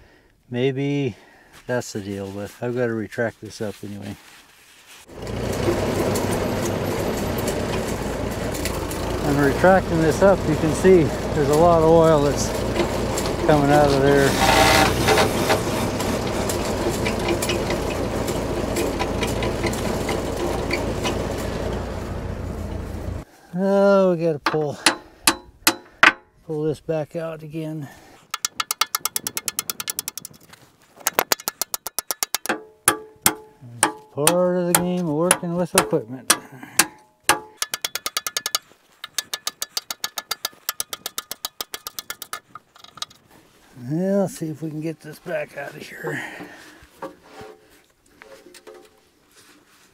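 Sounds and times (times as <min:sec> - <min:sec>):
tractor engine running: 0:05.1 - 0:23.3, 0:28.2 - 0:47.4
ratchet wrench clicking: 0:28.3 - 0:30.4, 0:36.8 - 0:43.2.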